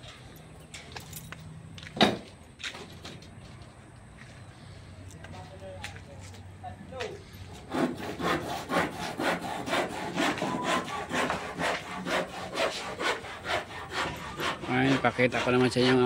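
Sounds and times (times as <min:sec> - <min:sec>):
handsaw cutting wood: 0:07.5 - 0:16.0.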